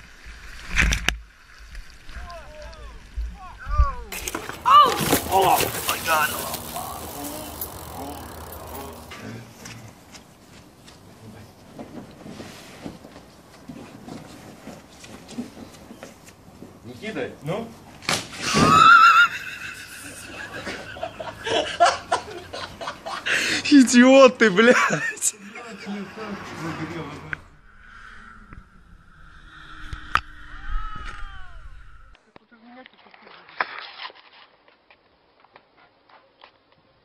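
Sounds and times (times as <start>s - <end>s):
water splashing against boat: 0.5s - 9.2s
high wavering human cry: 2.2s - 9.1s, 30.3s - 32.1s
fish slapping a face: 4.2s - 6.6s
low rumble: 27.3s - 32.2s.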